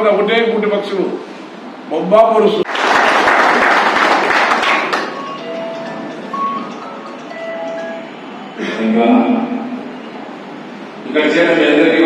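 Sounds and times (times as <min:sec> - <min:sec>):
small group clapping: 0:02.6 - 0:05.9.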